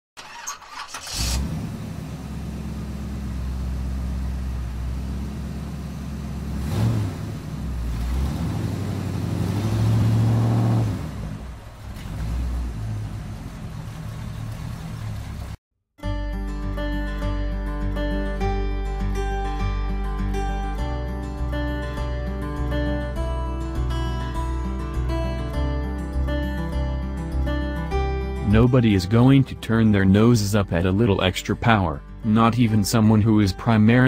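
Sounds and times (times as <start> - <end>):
car engine starting and revving: 0.2 - 15.6.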